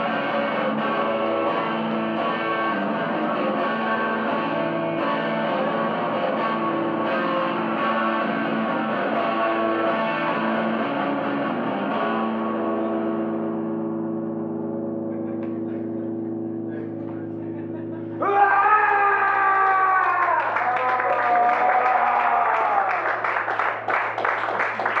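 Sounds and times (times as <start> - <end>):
electric guitar chord ringing: 0.0 - 18.2
shouted vocal through pa: 18.2 - 22.8.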